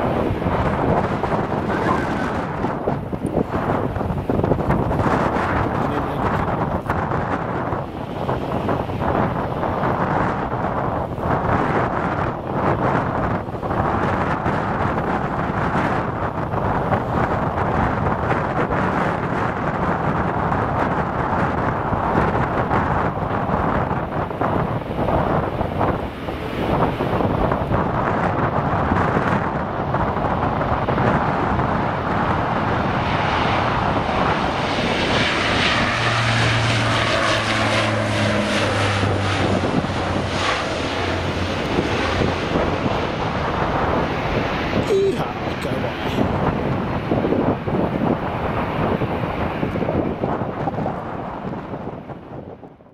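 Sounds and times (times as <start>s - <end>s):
aircraft engine and propeller drone: 0.0s - 52.9s.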